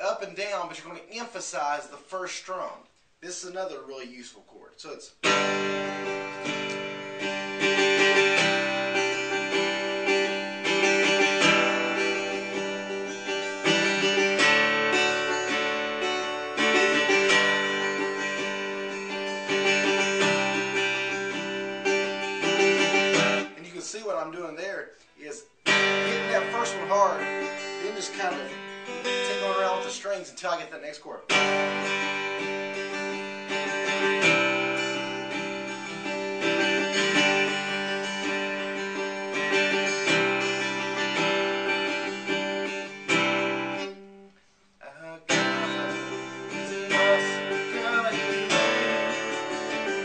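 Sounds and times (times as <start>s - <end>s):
man speaking: 0.0s - 5.2s, 23.5s - 31.3s, 44.8s - 46.0s
acoustic guitar strumming: 5.1s - 50.0s.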